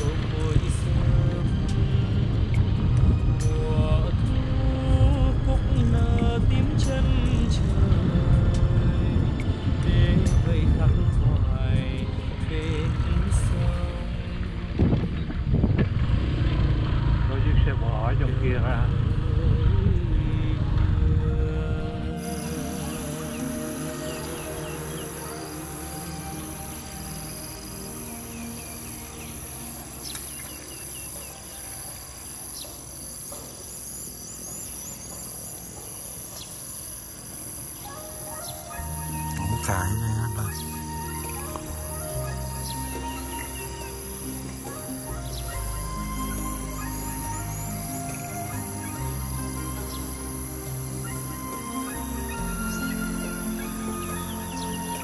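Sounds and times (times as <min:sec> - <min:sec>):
wind buffeting microphone: 0:00.0 - 0:22.2
insects droning: 0:00.0 - 0:55.0.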